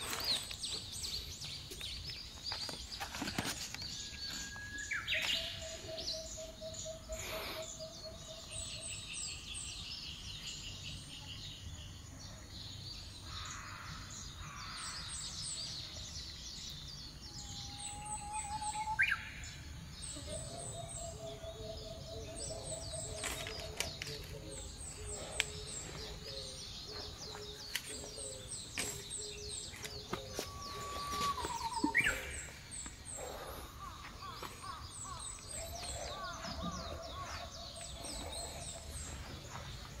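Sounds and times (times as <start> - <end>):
bird chirps and calls: 12.7 - 40.0
bird low pulsed trill: 14.4 - 40.0.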